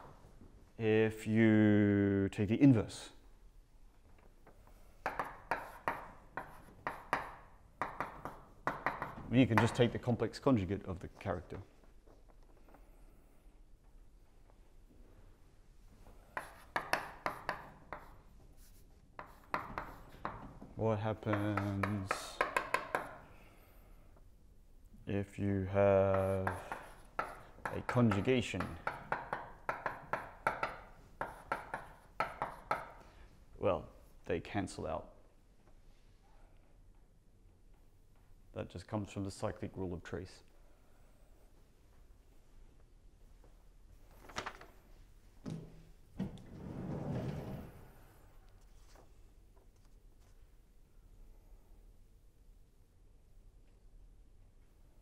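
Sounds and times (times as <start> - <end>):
chalk writing on chalkboard: 5.0 - 9.7, 16.2 - 20.4, 21.2 - 23.2, 26.1 - 33.0.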